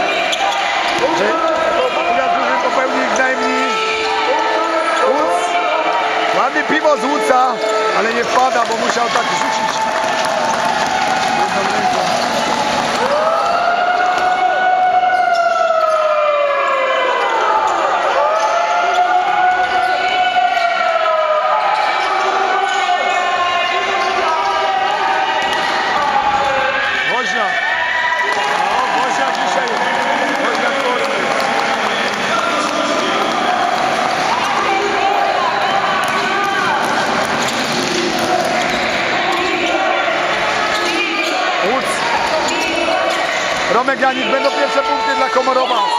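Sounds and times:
voices of players and spectators: 0.0 - 45.9.

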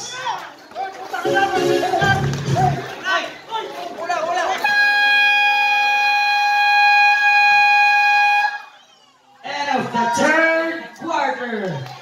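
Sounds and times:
basketball game horn: 1.2 - 2.7, 4.6 - 8.7.

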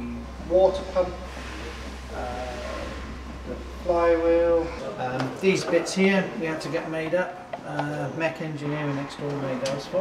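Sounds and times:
man talking: 0.0 - 10.0
steady low hum: 0.0 - 10.0.

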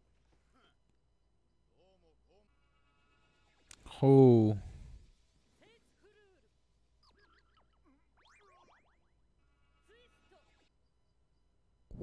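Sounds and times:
faint cartoon dialogue and effects: 1.7 - 10.8.

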